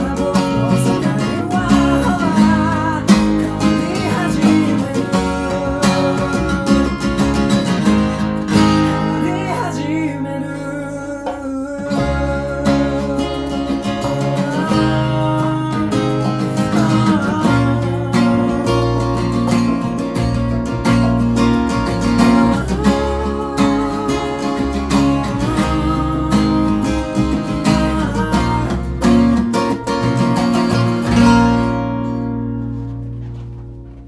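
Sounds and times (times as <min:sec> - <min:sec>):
acoustic guitar strummed: 0:00.0 - 0:34.0.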